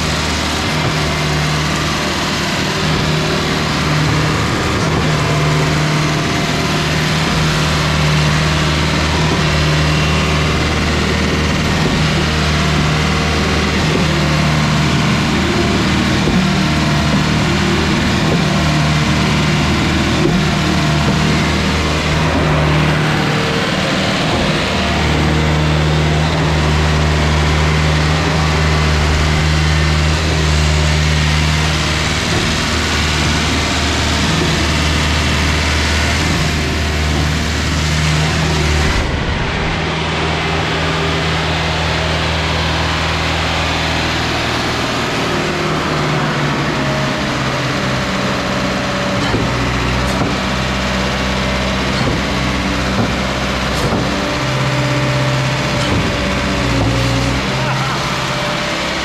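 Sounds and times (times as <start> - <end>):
diesel engine drone: 0.0 - 59.0.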